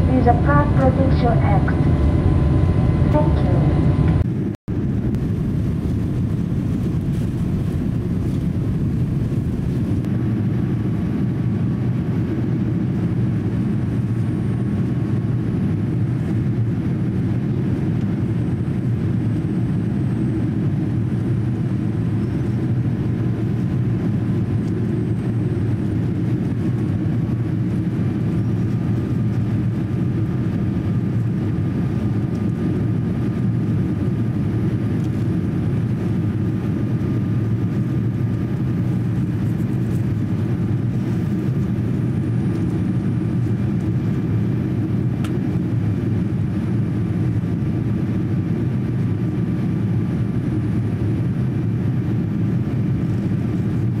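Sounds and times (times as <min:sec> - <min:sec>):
faint high whine: 0:00.0 - 0:04.2
airliner cabin rush: 0:00.0 - 0:04.3, 0:05.0 - 0:10.9.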